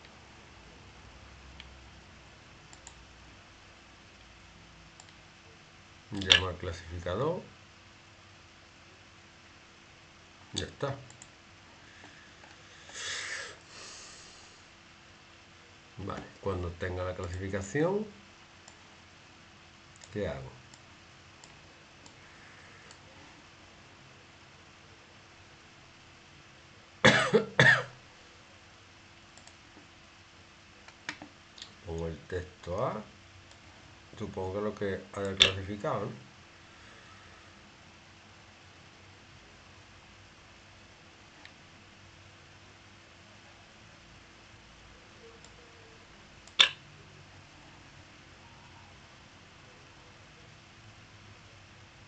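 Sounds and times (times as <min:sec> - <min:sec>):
low room hum: 0:00.0 - 0:52.0
computer mouse clicks: 0:02.7 - 0:03.0, 0:05.0 - 0:05.2, 0:10.6 - 0:11.3, 0:29.4 - 0:29.6, 0:46.4 - 0:46.8
person coughing: 0:27.0 - 0:28.0.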